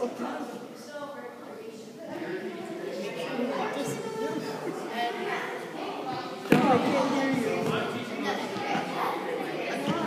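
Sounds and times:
children's voices: 0:00.0 - 0:10.0
ball smacking gym floor: 0:06.4 - 0:07.8.

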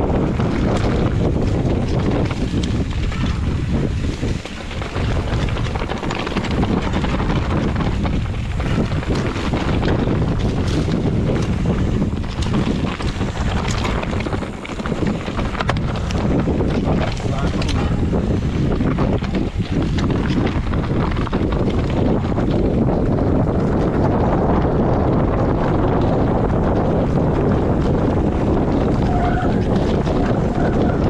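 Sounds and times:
bike and rocks rattling: 0:00.0 - 0:31.0
wind buffeting microphone: 0:00.0 - 0:31.0
tyres rolling on stones: 0:00.1 - 0:31.0.

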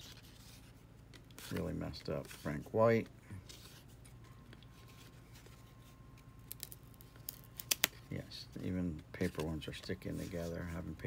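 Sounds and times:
cards flipping clicks and snaps: 0:06.2 - 0:08.0.

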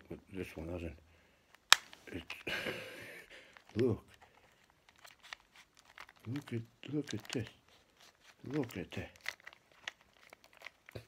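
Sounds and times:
plastic puzzle cube clicking: 0:01.5 - 0:02.5, 0:03.5 - 0:11.0.

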